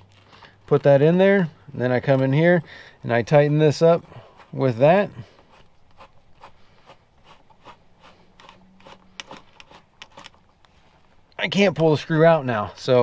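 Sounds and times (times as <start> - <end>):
screw clicks and scrapes: 5.2 - 10.7.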